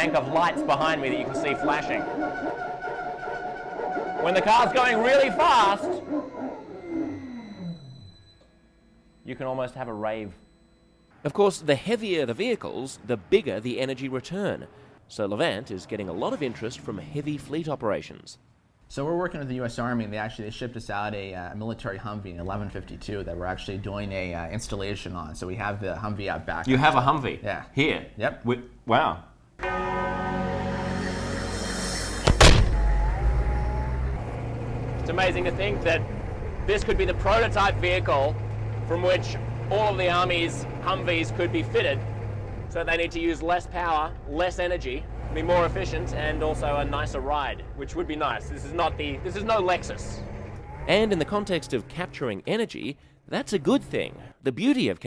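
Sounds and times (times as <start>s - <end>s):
motor whine spinning down: 0.0s - 11.1s
heavy thuds: 32.2s - 33.0s
vehicle engine low rumble: 32.6s - 51.9s.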